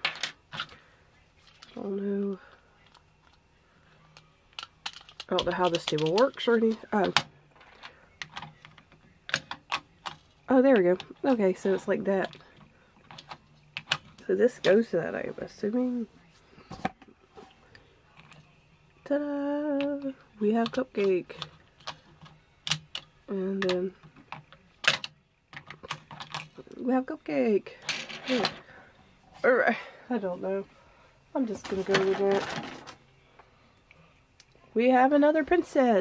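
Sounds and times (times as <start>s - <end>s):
plastic toy pieces clicking: 4.5s - 7.2s.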